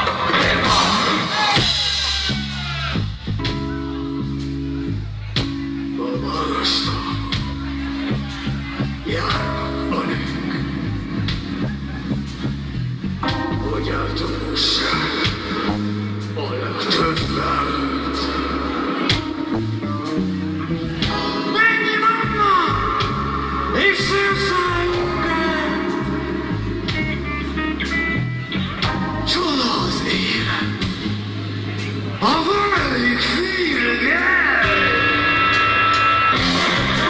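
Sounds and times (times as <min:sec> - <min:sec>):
live pop rock band: 0:00.0 - 0:37.0.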